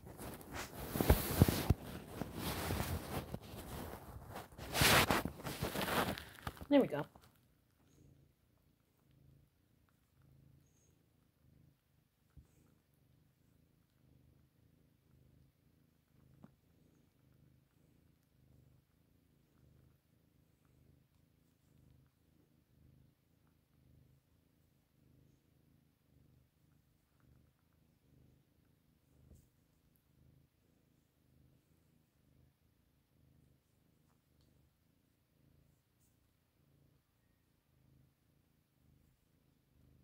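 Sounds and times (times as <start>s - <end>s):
cat purring: 0.0s - 40.0s.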